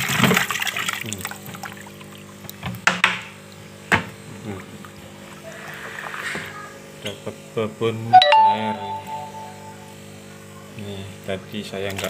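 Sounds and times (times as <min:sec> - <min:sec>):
bell-like chime ringing: 0:08.1 - 0:10.0
background music: 0:08.2 - 0:09.9.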